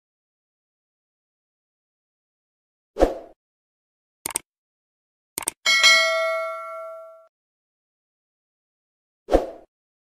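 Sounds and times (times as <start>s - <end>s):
notification bell ding: 5.7s - 7.3s.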